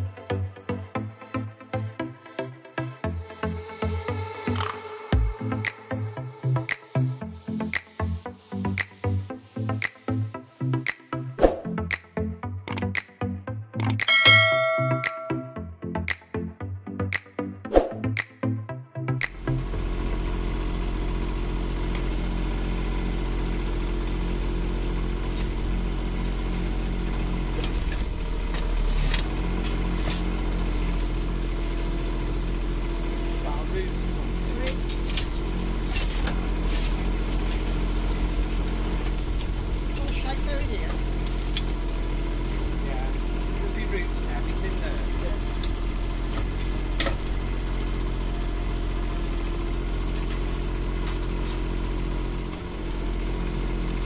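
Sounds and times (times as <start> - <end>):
diesel engine running: 0.0 - 17.6, 18.4 - 54.0
digger bucket scraping soil and stones: 34.9 - 40.2.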